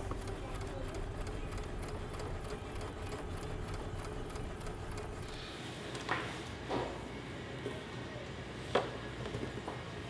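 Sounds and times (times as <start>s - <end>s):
sewing machines stitching: 0.0s - 5.3s.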